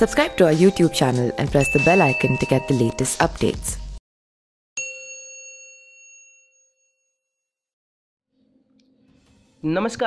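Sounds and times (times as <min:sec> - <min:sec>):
bell ding: 0:01.6 - 0:03.1, 0:04.8 - 0:07.5.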